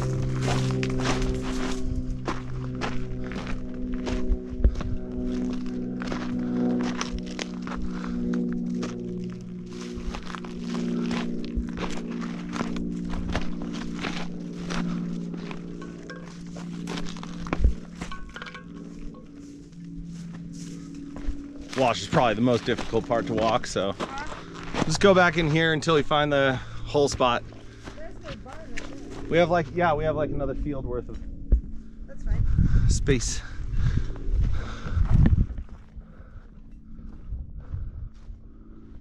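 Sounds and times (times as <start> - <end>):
footsteps on rocky dirt trail: 0.0 - 32.8, 33.4 - 38.4
droning music: 0.0 - 39.0.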